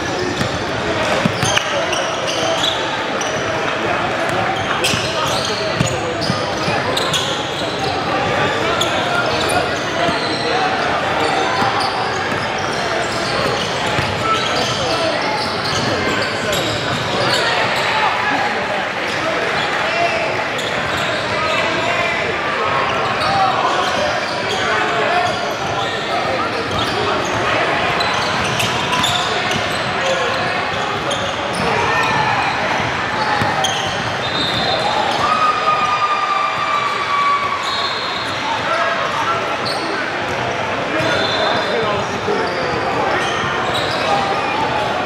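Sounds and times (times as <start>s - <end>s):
crowd chatter and shouts: 0.0s - 45.0s.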